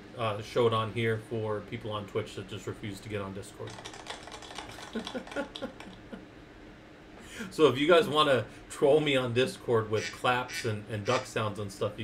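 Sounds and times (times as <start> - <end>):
man chuckling quietly: 4.7 - 6.3.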